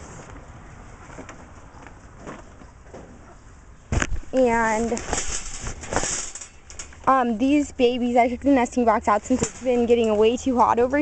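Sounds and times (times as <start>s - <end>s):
rustling handling noise: 0.0s - 11.0s
high rustling hiss: 3.9s - 10.5s
person speaking: 4.3s - 5.1s, 7.0s - 11.0s.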